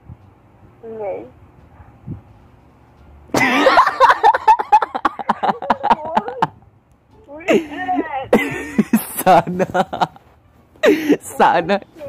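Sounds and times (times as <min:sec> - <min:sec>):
young man laughing and coughing: 0:03.3 - 0:06.6, 0:07.5 - 0:10.2, 0:10.8 - 0:11.5.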